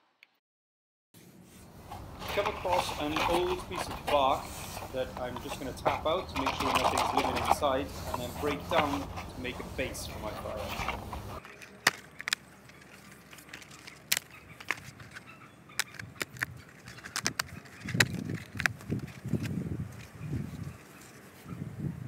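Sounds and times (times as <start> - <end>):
bark scraping and rustling: 1.2 - 21.6
bark knocking and cracking: 10.7 - 19.5.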